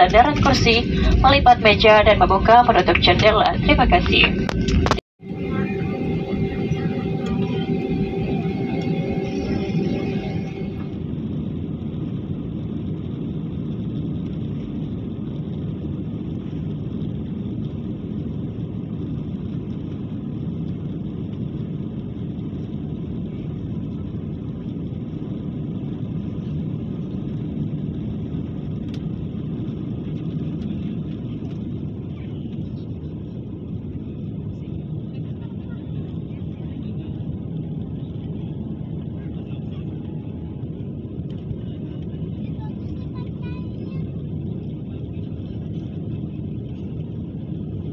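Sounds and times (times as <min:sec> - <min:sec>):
jet engines rumbling: 0:00.0 - 0:11.2
high steady tones: 0:05.2 - 0:11.0.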